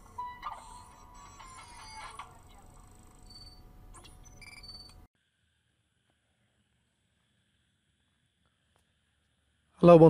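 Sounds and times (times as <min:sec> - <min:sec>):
electronic beeps: 0:00.0 - 0:05.1.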